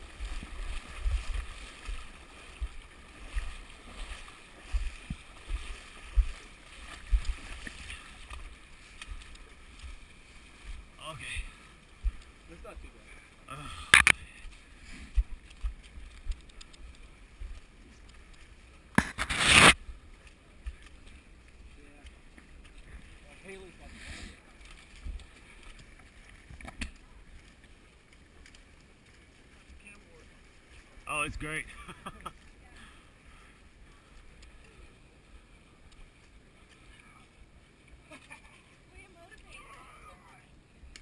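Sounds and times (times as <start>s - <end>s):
footsteps splashing through creek: 0.0s - 41.0s.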